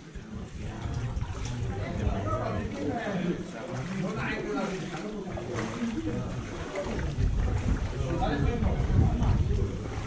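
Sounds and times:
wind rumble on microphone: 0:00.0 - 0:02.7, 0:05.3 - 0:10.0
people talking indistinctly: 0:00.0 - 0:10.0.

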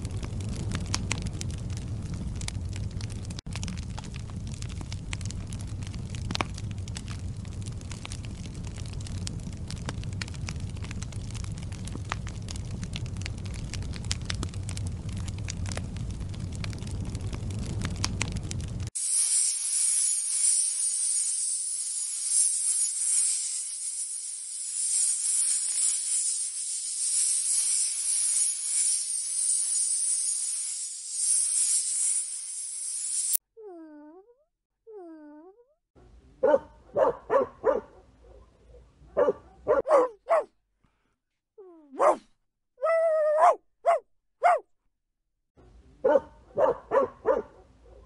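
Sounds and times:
snake hissing: 0:19.0 - 0:33.4
dog whining: 0:33.6 - 0:35.7, 0:41.6 - 0:42.2, 0:42.8 - 0:44.6
dog yelp: 0:36.4 - 0:40.5, 0:41.9 - 0:44.6, 0:46.0 - 0:48.0
dog barking: 0:36.4 - 0:40.6, 0:41.9 - 0:42.3, 0:43.3 - 0:44.7, 0:46.0 - 0:48.0.

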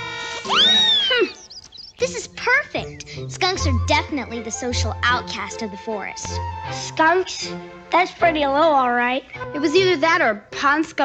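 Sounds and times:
cartoon background music: 0:00.0 - 0:11.0
high sliding squeal: 0:00.4 - 0:01.5.

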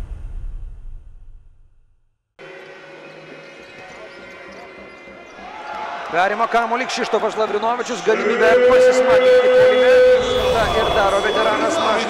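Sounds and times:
crowd noise: 0:02.4 - 0:12.0.

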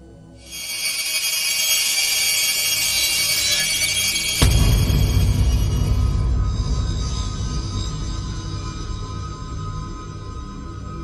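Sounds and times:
high shimmering electronic tone: 0:00.4 - 0:06.4.

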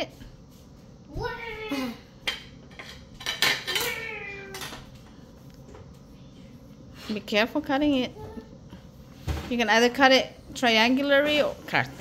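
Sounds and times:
knife and plate clinking: 0:02.3 - 0:04.8.

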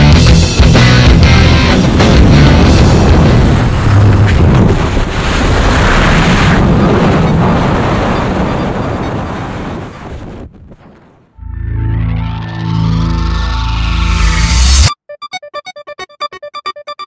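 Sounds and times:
wind roaring over microphone: 0:01.8 - 0:11.4.

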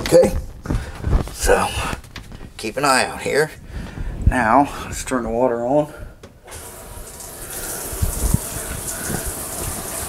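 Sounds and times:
water running down drain: 0:06.5 - 0:10.0.

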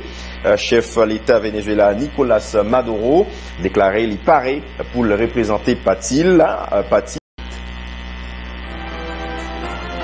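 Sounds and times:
low droning hum of held tones: 0:00.0 - 0:10.0.

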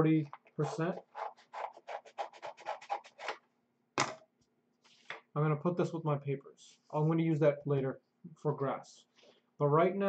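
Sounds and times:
scissors snipping paper: 0:00.6 - 0:03.4.

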